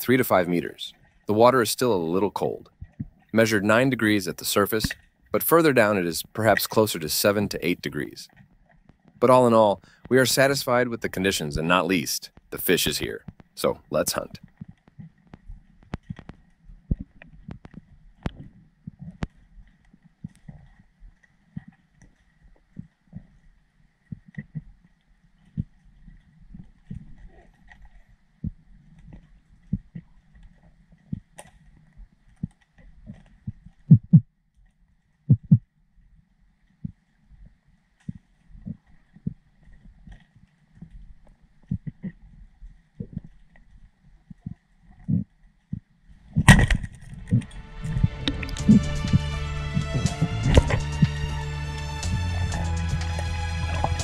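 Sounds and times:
dull knocks and clicks underwater: 2.6 - 3.3, 8.3 - 9.3, 12.3 - 12.6, 13.2 - 13.6, 14.2 - 51.2, 52.1 - 54.0
music: 47.3 - 54.0.

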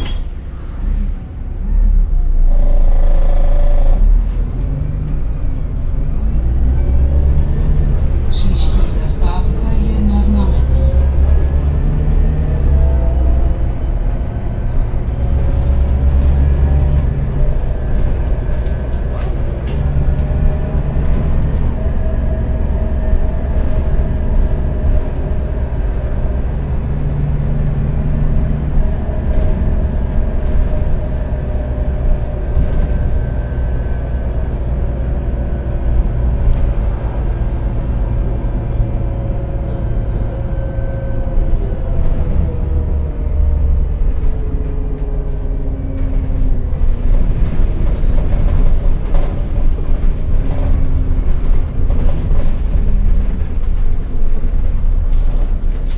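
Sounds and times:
bus engine rumble with whine: 0.0 - 55.9.

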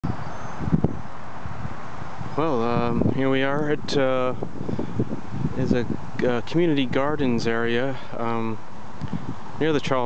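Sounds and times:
distant road traffic hum: 0.0 - 10.0
wind buffeting microphone: 0.0 - 10.0.

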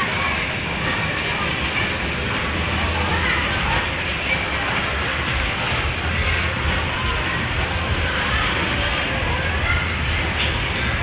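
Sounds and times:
faint music: 0.0 - 11.0
low rumble of indoor hall: 0.0 - 11.0.

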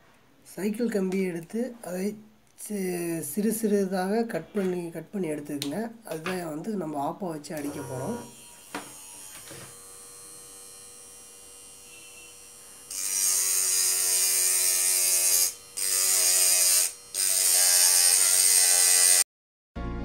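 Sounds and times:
faint steady buzz: 7.6 - 17.6
mini drill high-pitched whirr: 7.6 - 19.2.

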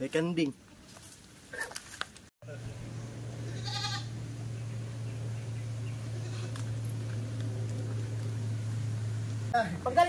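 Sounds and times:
low hum: 2.4 - 10.0
goat bleating: 3.4 - 4.2, 6.1 - 6.7.

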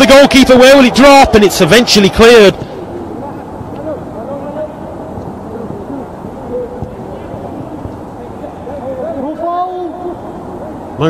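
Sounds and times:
outdoor ambience hiss: 0.0 - 11.0.

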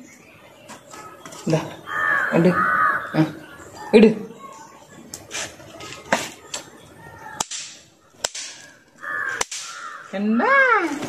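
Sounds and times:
bang snaps snapping: 7.4 - 8.8, 9.4 - 9.9.

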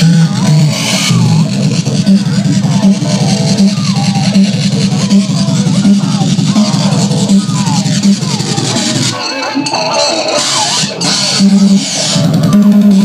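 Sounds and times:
low buzzing throb: 0.0 - 9.2
high glitchy bleeps: 0.0 - 13.0.

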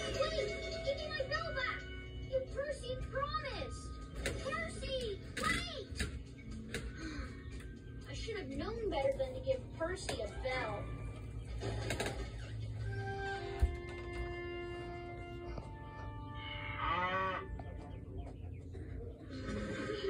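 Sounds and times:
cartoon music from tv speaker: 0.0 - 20.0
cartoon cow mooing: 16.4 - 17.6.

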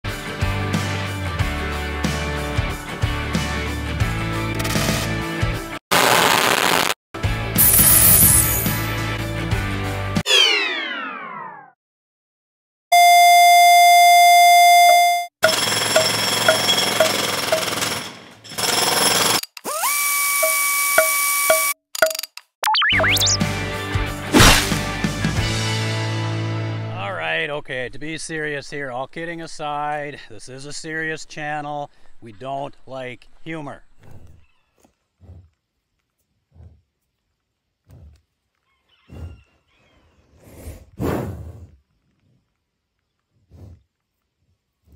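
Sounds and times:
falling power-down glide: 10.3 - 11.7
beep tone with short pips: 12.9 - 15.3, 20.4 - 23.4
bison breathing puffs: 34.0 - 35.7, 36.3 - 37.0, 37.8 - 38.4, 39.0 - 42.6, 43.3 - 44.9
hiss with regular ticks: 34.9 - 38.5.

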